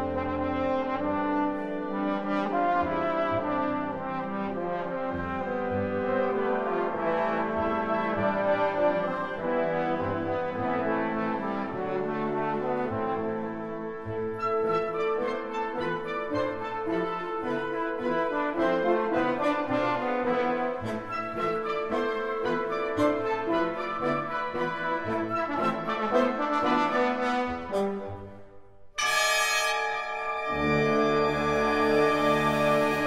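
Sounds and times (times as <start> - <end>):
trombone with wind orchestra: 0.0 - 28.4, 29.0 - 33.0.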